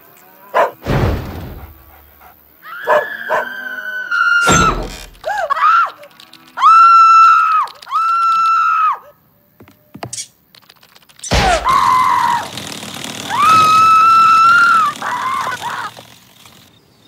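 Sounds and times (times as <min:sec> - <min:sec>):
thud: 0:00.8 - 0:02.2, 0:04.4 - 0:05.3, 0:11.3 - 0:11.8
cartoon dog howling: 0:02.6 - 0:09.2, 0:11.3 - 0:12.6, 0:13.3 - 0:16.0
woman's frightened cries: 0:02.6 - 0:09.2, 0:13.3 - 0:16.0
long high screams: 0:02.6 - 0:09.3, 0:11.3 - 0:16.1.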